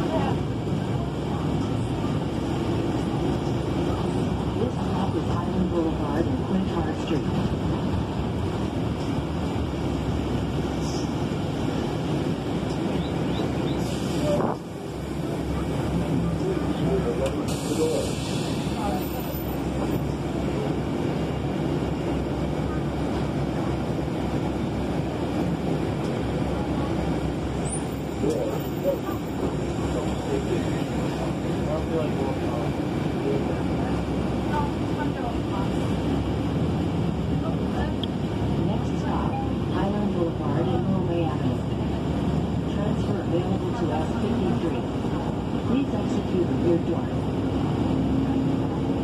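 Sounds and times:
bus engine and cabin rumble: 0.0 - 49.0
indistinct passenger voices: 0.0 - 49.0.

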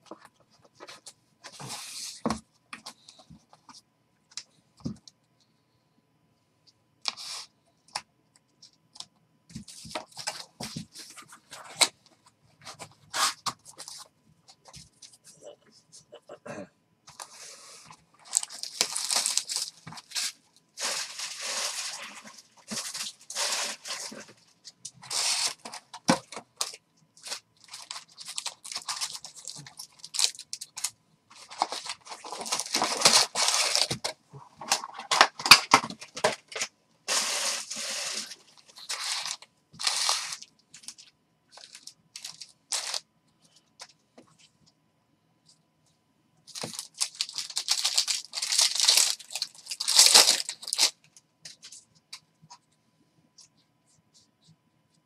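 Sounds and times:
tearing and crinkling packaging: 18.2 - 24.4, 25.0 - 43.0, 46.5 - 51.0.

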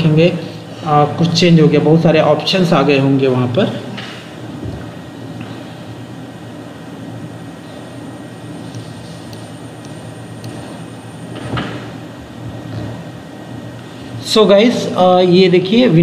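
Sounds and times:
faint high whine: 0.0 - 16.0
low room hum: 0.0 - 16.0.

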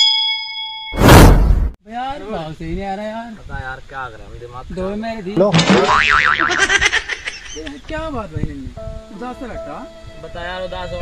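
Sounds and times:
comedy boing sound effect: 5.6 - 6.9.

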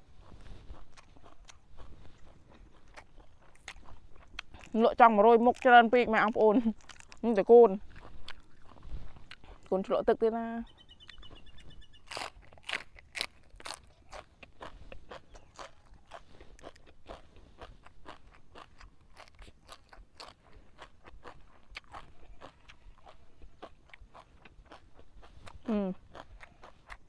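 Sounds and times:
chewing crisp vegetables: 0.0 - 27.0.

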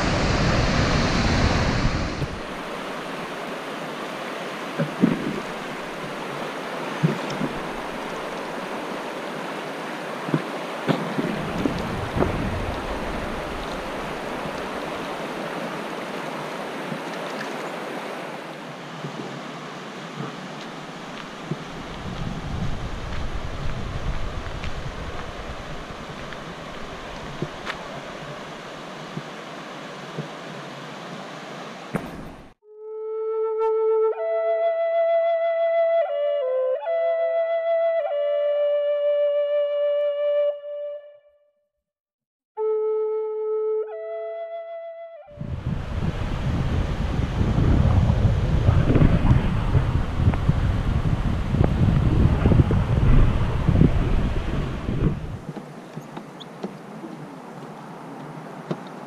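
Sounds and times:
wind knocks on microphone: 0.0 - 2.5, 4.8 - 5.5, 10.3 - 14.6, 21.4 - 27.8, 45.4 - 56.1
waterfall roar: 0.0 - 32.5
fast-flowing river rushing: 0.0 - 32.6.

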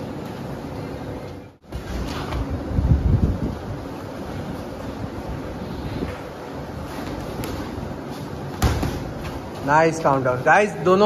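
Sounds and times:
air buffeting microphone: 1.6 - 10.5.

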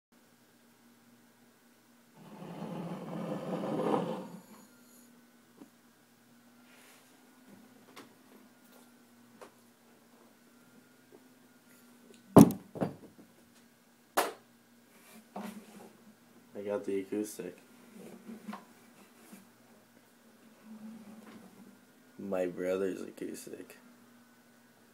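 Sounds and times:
guitar handling knocks and rustles: 12.4 - 13.3.

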